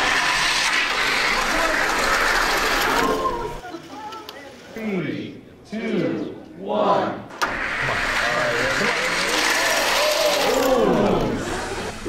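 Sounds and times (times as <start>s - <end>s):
toy cars rolling on metal track: 0.0s - 3.6s, 7.4s - 12.0s.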